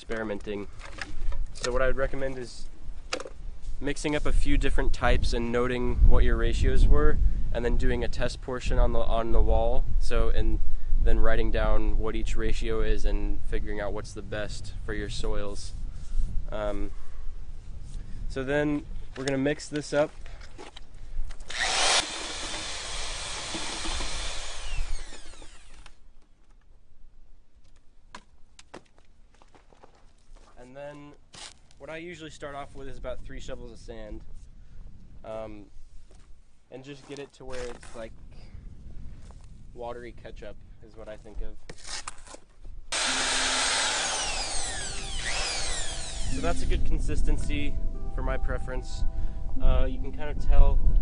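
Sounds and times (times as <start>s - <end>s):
electric drill mixer whining: 21.5s - 26.0s, 42.9s - 46.7s.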